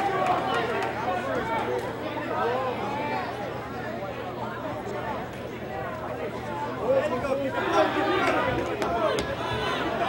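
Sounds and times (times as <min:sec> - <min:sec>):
spectators shouting: 0:07.5 - 0:10.0.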